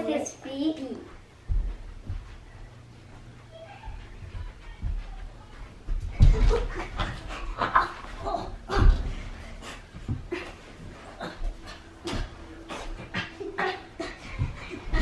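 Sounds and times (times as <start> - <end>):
children panting and grunting: 6.2 - 15.0.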